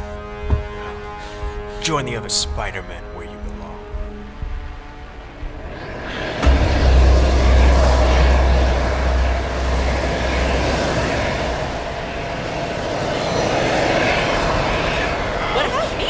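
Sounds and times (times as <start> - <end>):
dense rushing noise with bass swell: 5.0 - 15.7.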